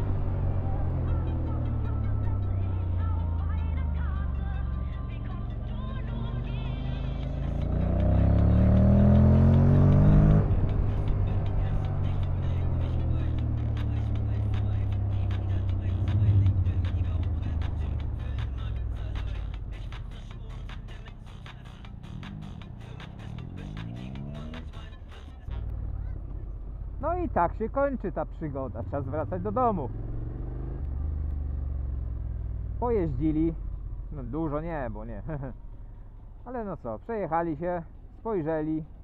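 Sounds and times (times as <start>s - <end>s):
motorcycle engine accelerating: 0.0s - 19.8s, 20.4s - 24.9s, 28.3s - 36.4s
road and wind noise: 0.0s - 39.0s
music: 0.5s - 25.8s.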